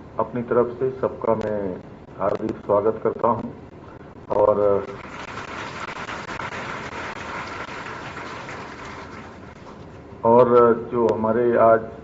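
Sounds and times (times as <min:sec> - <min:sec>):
audience applauding: 0:04.9 - 0:09.8.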